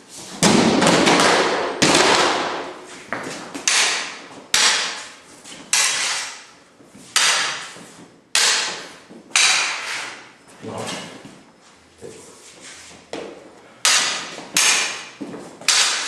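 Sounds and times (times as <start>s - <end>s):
swords clashing: 3.6s - 6.5s, 7.1s - 10.2s, 13.8s - 16.0s.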